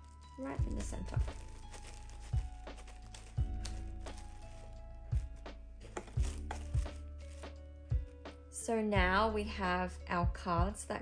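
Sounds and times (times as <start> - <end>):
slow low thumping beat: 5.1 - 7.1, 9.0 - 9.4, 10.2 - 11.0.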